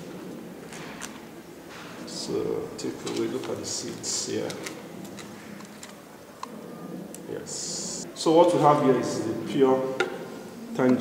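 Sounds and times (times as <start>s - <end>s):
faint rustle of paper: 2.8s - 6.6s.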